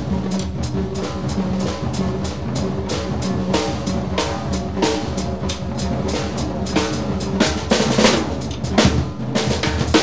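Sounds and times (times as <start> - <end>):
drum kit solo: 0.0 - 10.0.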